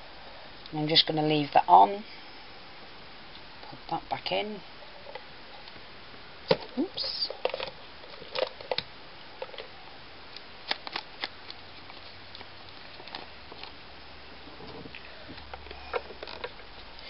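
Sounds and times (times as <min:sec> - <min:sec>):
faint room hiss: 0:00.0 - 0:17.0.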